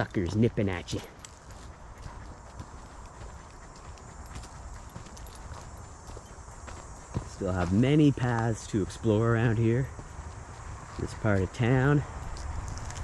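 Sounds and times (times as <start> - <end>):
footsteps on dirt trail: 0.0 - 13.0.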